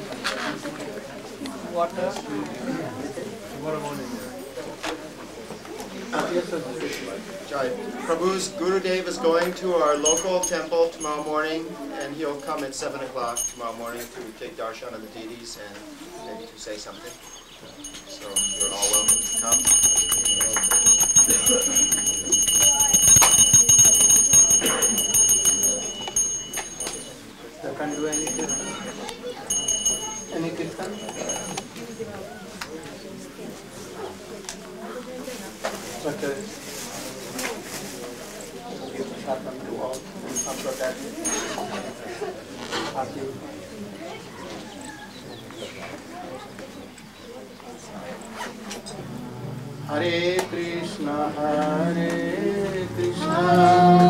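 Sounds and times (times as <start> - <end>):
people talking: 0.0 - 54.0
quiet murmured voices: 0.0 - 54.0
handbell ringing: 10.0 - 11.5, 13.3 - 14.0, 17.2 - 32.4, 40.3 - 42.0.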